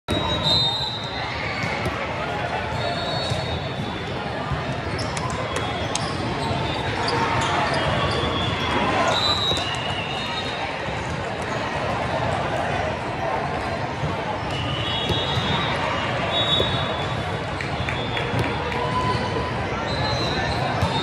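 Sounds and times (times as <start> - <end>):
crowd of voices: 0.1 - 21.0.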